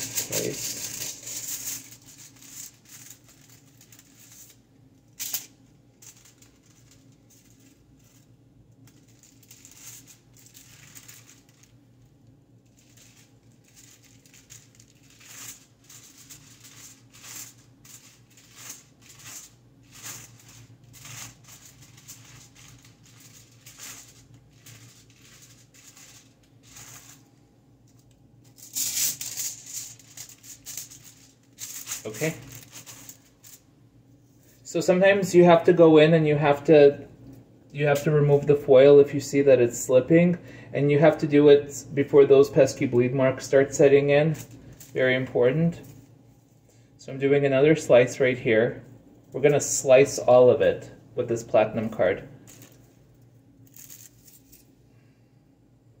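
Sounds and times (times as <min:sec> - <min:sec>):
foil crinkling and rustling: 0:00.0 - 0:27.4, 0:28.0 - 0:33.6.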